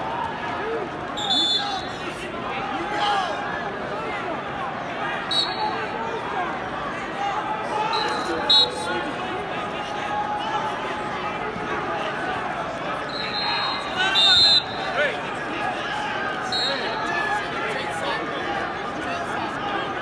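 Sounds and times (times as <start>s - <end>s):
crowd chatter and shouting: 0.0s - 20.0s
referee whistle blasts: 1.2s - 2.0s, 5.3s - 5.8s, 7.9s - 9.0s, 13.1s - 15.0s, 16.5s - 17.0s.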